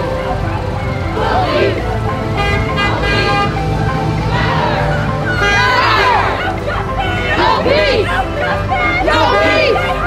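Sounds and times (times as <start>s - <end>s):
low traffic rumble: 0.0s - 10.0s
music: 0.0s - 10.0s
car horn honking: 2.2s - 3.9s, 4.5s - 10.0s.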